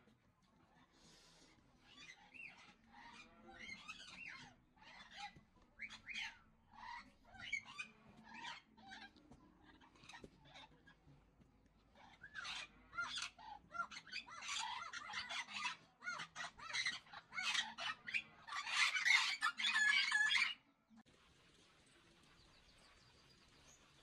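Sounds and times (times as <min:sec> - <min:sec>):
faint background noise: 0:00.0 - 0:24.0.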